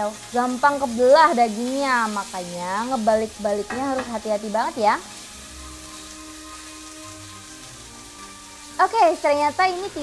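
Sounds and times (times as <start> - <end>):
fish sizzling in a grill pan: 0.0 - 10.0
soft background music: 0.0 - 10.0.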